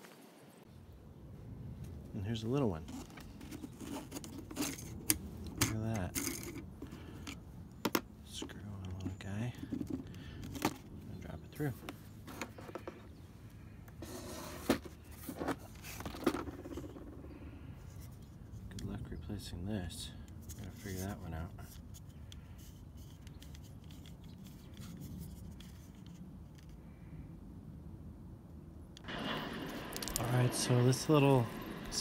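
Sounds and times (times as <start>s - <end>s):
hard plastic clicking and scraping: 2.8s - 13.2s, 13.9s - 17.2s, 20.2s - 26.8s.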